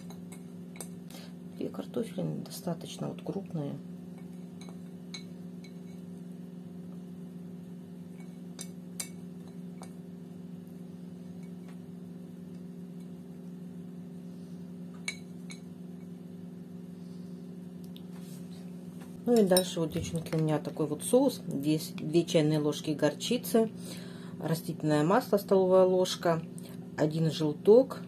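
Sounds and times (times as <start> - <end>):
low hum: 0.0 - 28.0.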